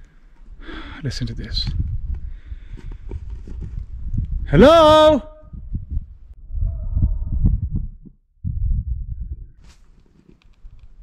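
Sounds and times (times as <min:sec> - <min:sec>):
thumping rumble on microphone: 0:01.6 - 0:04.5, 0:05.5 - 0:09.8
echo of man shouting: 0:04.5 - 0:05.4.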